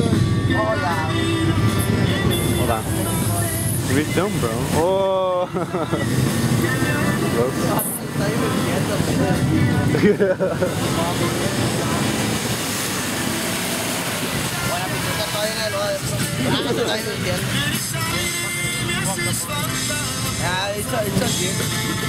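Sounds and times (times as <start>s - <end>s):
loud crowd voices: 0.0s - 22.0s
car engine running: 1.3s - 18.2s
vehicle splashing through mud: 1.6s - 19.1s.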